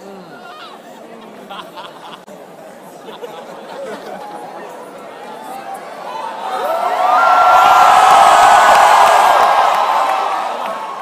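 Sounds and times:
crowd cheering and shouting: 0:05.2 - 0:11.0.

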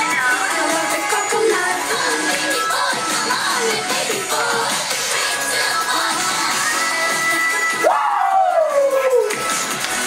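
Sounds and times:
girl-group dance pop song: 0:00.0 - 0:10.0
vocal whoop sliding in pitch: 0:07.8 - 0:09.3.

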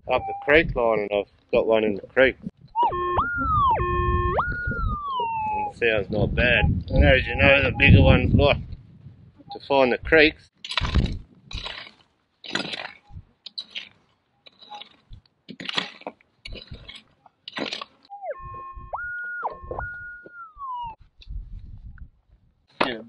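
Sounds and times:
metal detector tone: 0:00.0 - 0:00.7, 0:02.7 - 0:05.8, 0:07.0 - 0:08.2, 0:18.1 - 0:21.0
pick striking stony dirt: 0:10.6 - 0:18.1, 0:22.7 - 0:23.0.

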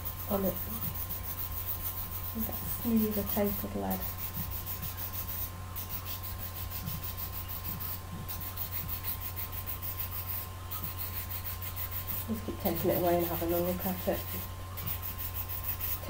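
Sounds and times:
nail file scratching pencil lead: 0:00.0 - 0:16.0.

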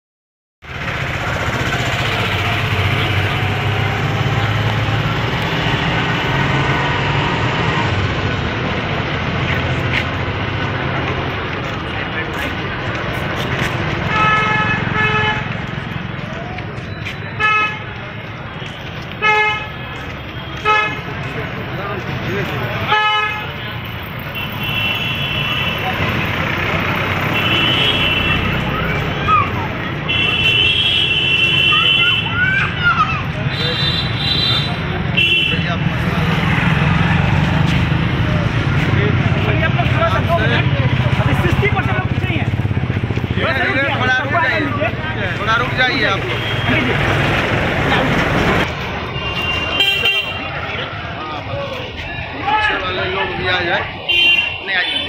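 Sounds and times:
street traffic: 0:00.6 - 0:55.0
crowd noise: 0:00.7 - 0:55.0
vehicle horn tooting: 0:14.1 - 0:15.6, 0:27.3 - 0:28.6, 0:30.1 - 0:32.4, 0:33.5 - 0:35.7, 0:46.3 - 0:46.9, 0:49.1 - 0:50.5, 0:54.1 - 0:55.0.

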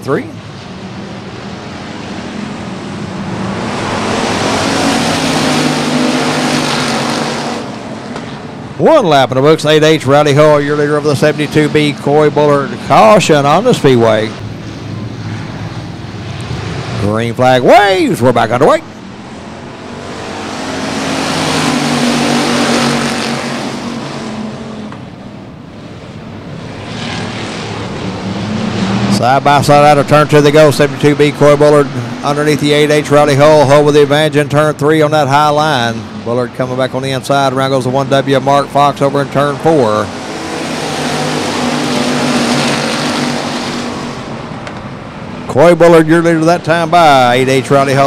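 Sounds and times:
race car engines at full throttle: 0:00.0 - 0:48.0.

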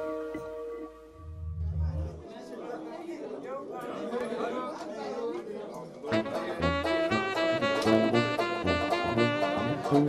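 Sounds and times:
background chatter of voices: 0:01.6 - 0:07.7.

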